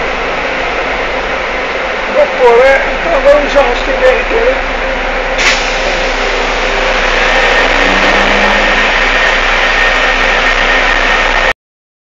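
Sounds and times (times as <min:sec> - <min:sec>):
bus engine and road noise: 0:00.0 - 0:11.6.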